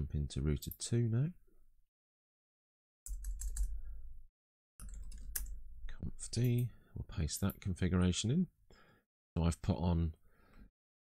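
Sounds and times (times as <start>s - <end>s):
typing on computer keyboard: 3.1s - 3.8s, 4.8s - 5.6s.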